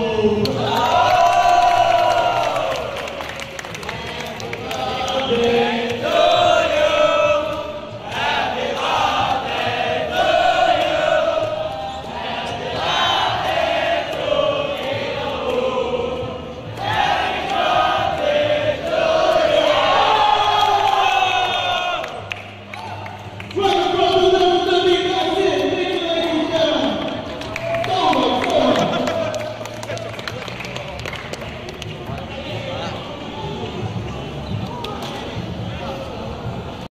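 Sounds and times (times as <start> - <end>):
men chanting and singing: 3.9 - 22.2.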